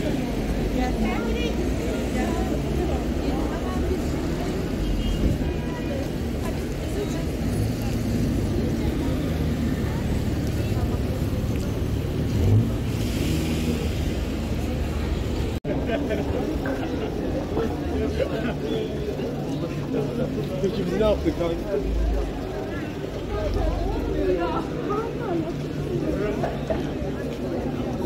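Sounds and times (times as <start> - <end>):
chatter of passers-by: 0.0 - 28.0
low traffic rumble: 0.0 - 28.0
vehicle engines running: 0.0 - 28.0.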